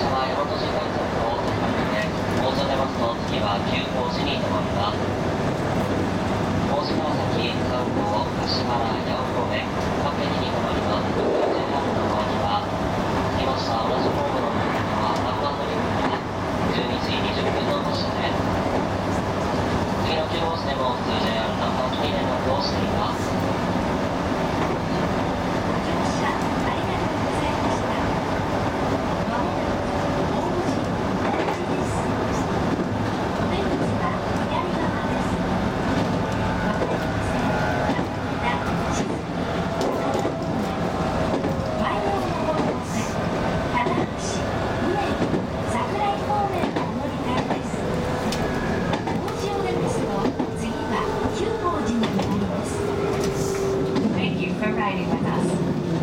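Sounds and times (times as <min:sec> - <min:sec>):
electric train humming: 0:00.0 - 0:56.0
indistinct voices: 0:00.0 - 0:56.0.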